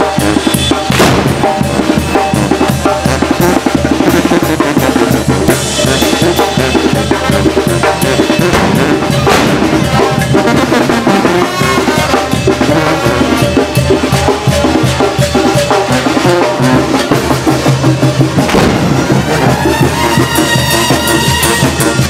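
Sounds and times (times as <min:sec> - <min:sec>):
drums keeping a steady beat: 0:00.0 - 0:22.0
wind band playing: 0:00.0 - 0:22.0.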